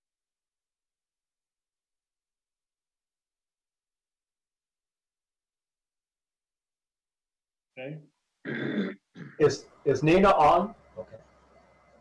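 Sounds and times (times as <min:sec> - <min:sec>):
man speaking over video call: 0:07.8 - 0:08.2, 0:09.4 - 0:11.3.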